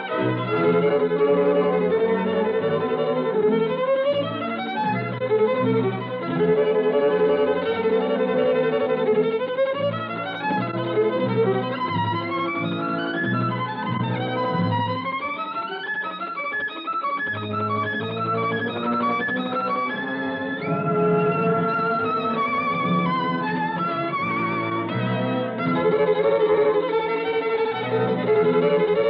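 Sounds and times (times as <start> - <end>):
orchestral accompaniment: 0.0 - 29.0
solo violin: 0.0 - 29.0.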